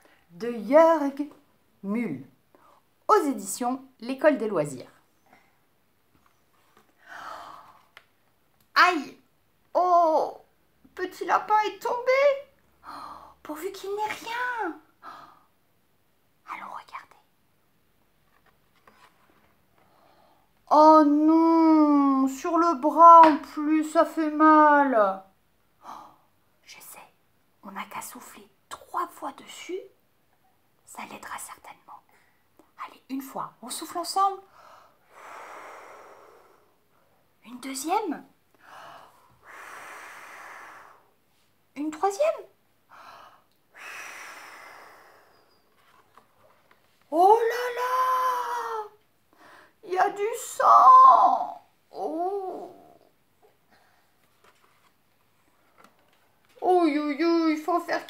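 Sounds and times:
person whispering: 0:16.4 - 0:17.3, 0:25.8 - 0:29.7, 0:30.9 - 0:32.1
woman blowing air: 0:35.0 - 0:36.8, 0:38.8 - 0:41.2, 0:43.7 - 0:45.7.

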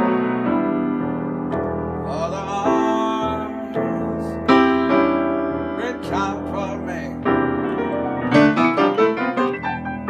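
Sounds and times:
piano playing sustained chords: 0:00.0 - 0:10.0.

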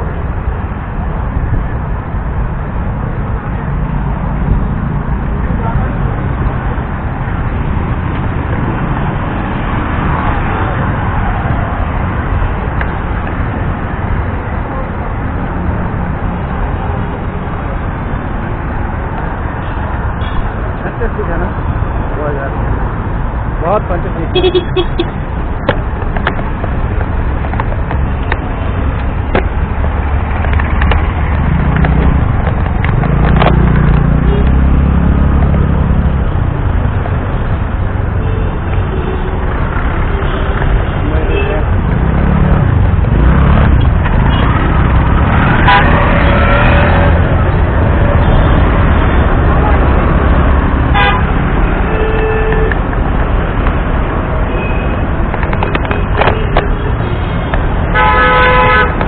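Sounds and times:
low rumble of traffic: 0:00.0 - 0:59.0
vehicle horns honking: 0:24.3 - 0:25.2, 0:45.5 - 0:46.8, 0:50.9 - 0:52.8, 0:56.3 - 0:59.0.

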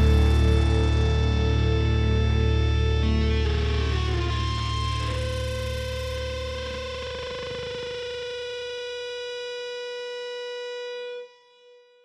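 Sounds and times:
distorted electric guitar chord: 0:00.0 - 0:11.2.

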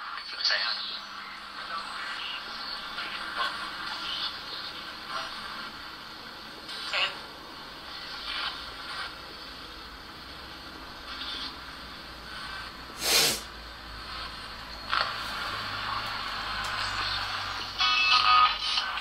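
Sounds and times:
radio static and hiss: 0:00.0 - 0:19.0
sharp burst of noise: 0:12.5 - 0:13.5.

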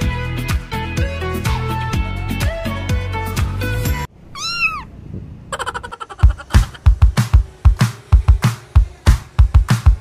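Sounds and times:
music: 0:00.0 - 0:04.1, 0:06.5 - 0:10.0
cat meowing: 0:04.3 - 0:05.0.

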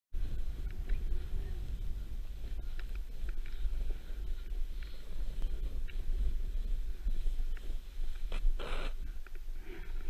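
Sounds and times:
wind buffeting microphone: 0:00.2 - 0:10.0
snow hissing under rider: 0:03.2 - 0:10.0.

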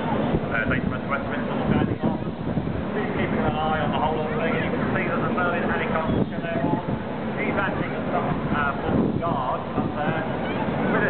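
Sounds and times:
people talking: 0:00.0 - 0:02.3, 0:02.9 - 0:11.0
helicopter flying overhead: 0:00.0 - 0:11.0.

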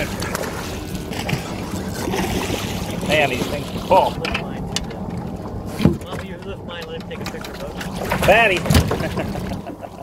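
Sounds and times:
fish splashing in water: 0:00.0 - 0:03.9.

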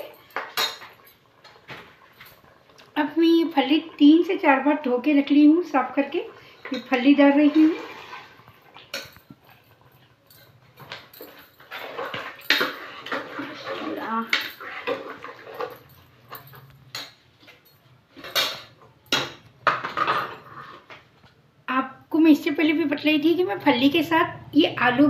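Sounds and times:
spoon scraping metal pot: 0:10.9 - 0:15.8.

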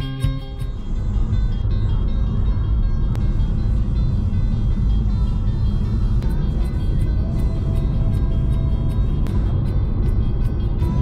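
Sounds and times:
car road and engine rumble: 0:00.0 - 0:11.0
plucked guitar music: 0:00.0 - 0:11.0.

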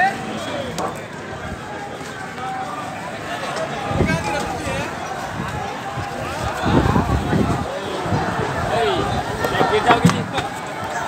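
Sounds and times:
outdoor noise: 0:00.0 - 0:11.0
people talking indistinctly: 0:00.0 - 0:11.0.

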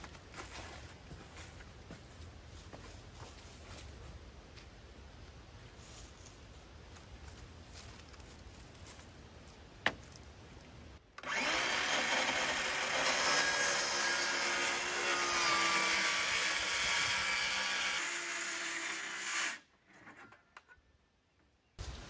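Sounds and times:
power saw cutting plywood: 0:11.2 - 0:19.6.

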